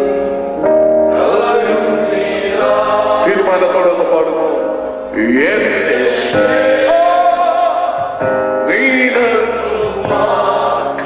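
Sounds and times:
men singing worship song: 1.1 - 11.0.

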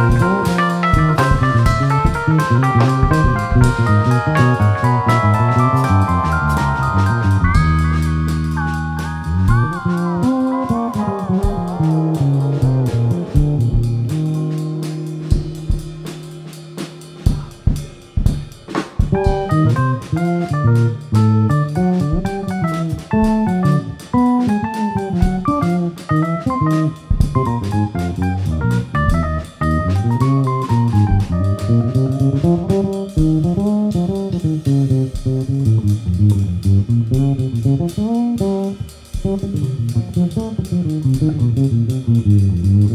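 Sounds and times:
electric keyboard chord: 0.0 - 17.5, 19.2 - 33.4
electric bass note: 0.0 - 17.8, 19.1 - 42.9
drums: 0.0 - 42.9.

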